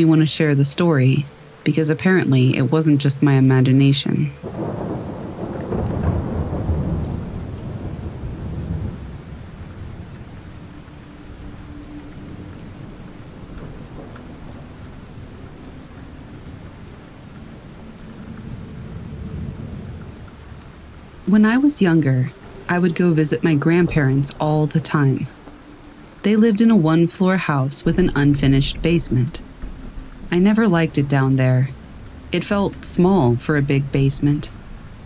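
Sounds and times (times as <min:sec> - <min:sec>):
steady rain: 0:00.0 - 0:35.0
thunder rumbling: 0:02.1 - 0:35.0.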